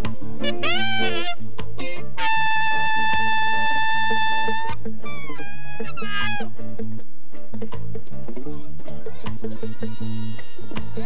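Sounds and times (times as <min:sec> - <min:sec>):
bass and drums rhythm: 0:00.0 - 0:11.0
saxophone solo: 0:00.4 - 0:06.6.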